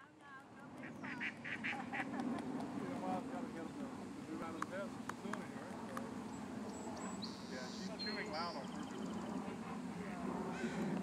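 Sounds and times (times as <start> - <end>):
steady low hum: 0.0 - 11.0
duck quacking: 0.8 - 2.1.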